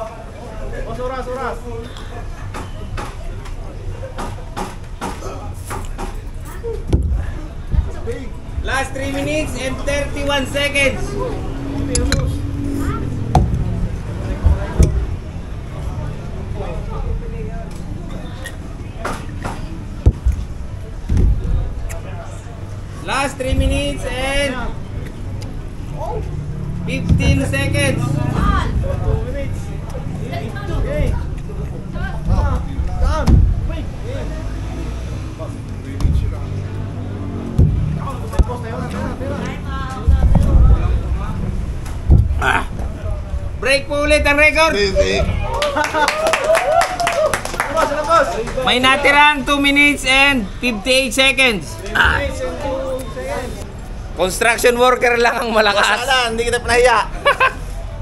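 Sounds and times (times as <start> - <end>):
faint voices: 0.0 - 49.1, 49.8 - 54.5
steady low rumble: 6.2 - 18.9, 19.7 - 46.0.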